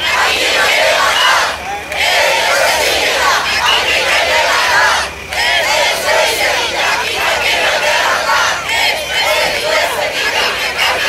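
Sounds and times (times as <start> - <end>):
crowd shouting and chanting: 0.0 - 11.0.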